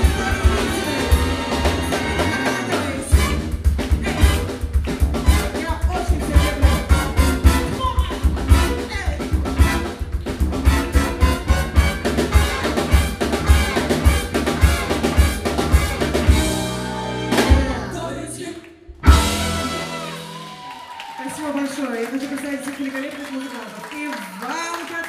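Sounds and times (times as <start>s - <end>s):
jazz band playing: 0.0s - 21.0s.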